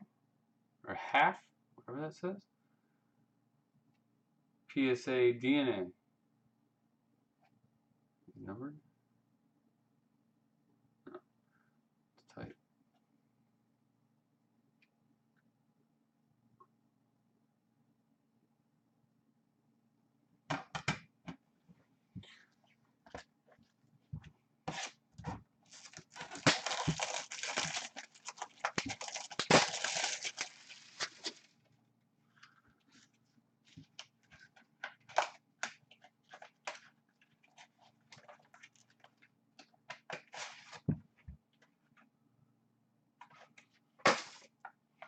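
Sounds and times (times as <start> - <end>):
wrapping crinkling and tearing: 25.7 - 31.6.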